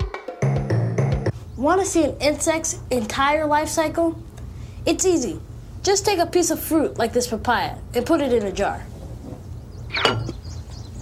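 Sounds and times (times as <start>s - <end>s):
low steady hum: 1.3s - 11.0s.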